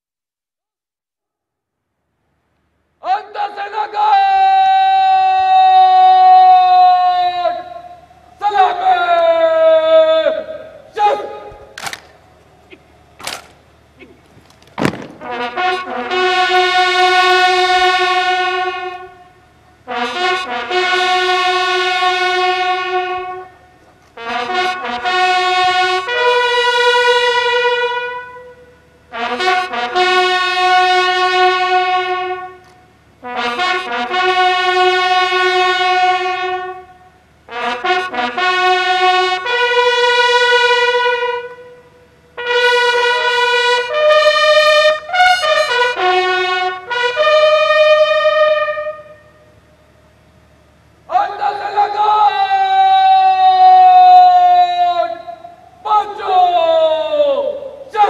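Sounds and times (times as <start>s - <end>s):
bugles playing in unison: 2.3s - 58.0s.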